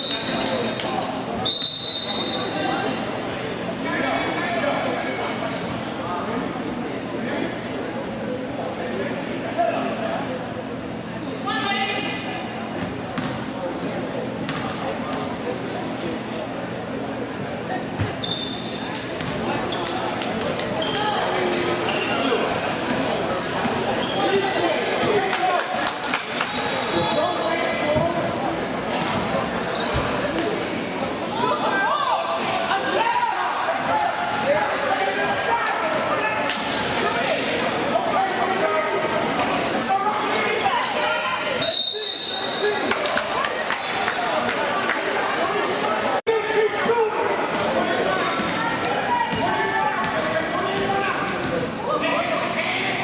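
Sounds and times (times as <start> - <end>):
indistinct shouts and chatter: 0.0 - 53.0
high squeals: 18.1 - 19.8.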